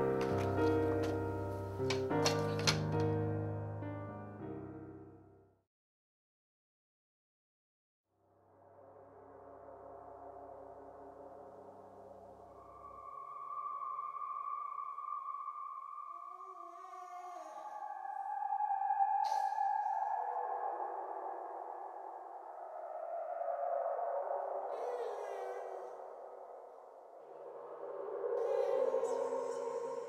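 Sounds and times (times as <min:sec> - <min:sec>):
eerie synthesized drone: 0:08.3 - 0:30.0.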